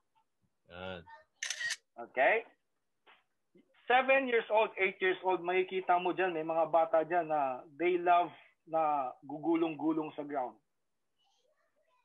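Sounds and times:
man's wordless hesitation sound: 0:00.7 - 0:01.1.

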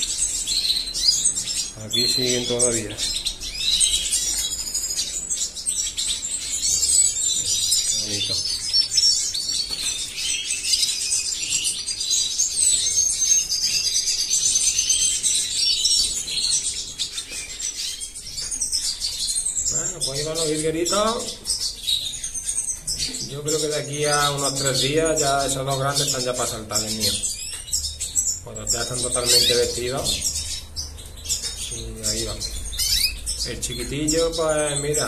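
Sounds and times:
finches chirping and twittering: 0:00.0 - 0:35.0.

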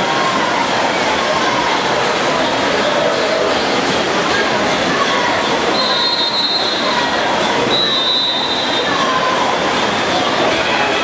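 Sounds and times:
crowd cheering and shouting: 0:00.0 - 0:11.0
high held whistles: 0:05.8 - 0:06.8, 0:07.7 - 0:08.9.

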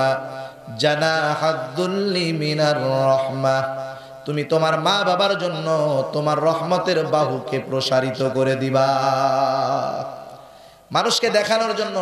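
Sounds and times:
man chanting melodic recitation: 0:00.0 - 0:12.0.

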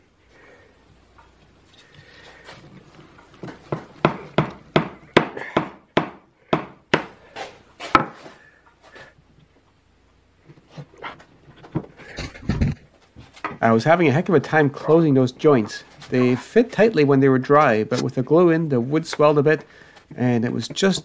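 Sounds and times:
mallet striking wood: 0:03.4 - 0:07.2.

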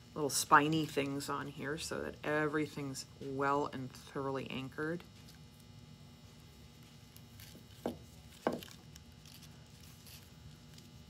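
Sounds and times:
ribbon and greenery rustling: 0:06.6 - 0:11.0.

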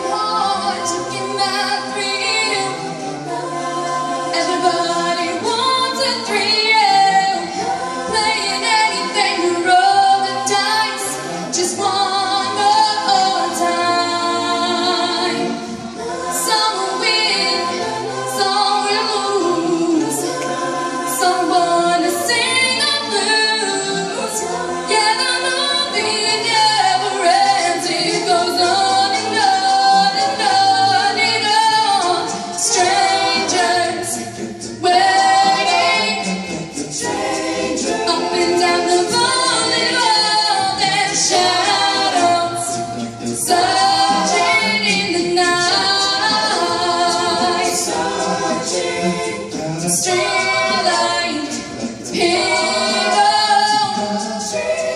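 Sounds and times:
a cappella ensemble singing: 0:00.0 - 0:54.9.

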